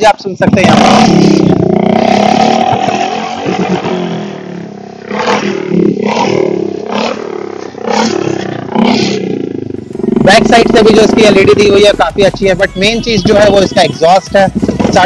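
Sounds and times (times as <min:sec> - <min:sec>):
motorcycle engine revving: 0:00.0 - 0:15.0.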